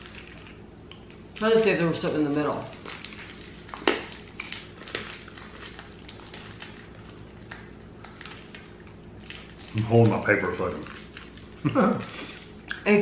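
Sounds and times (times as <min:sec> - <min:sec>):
eating hard candy: 0:02.4 - 0:12.9
plastic wrapper crinkling: 0:02.5 - 0:11.7.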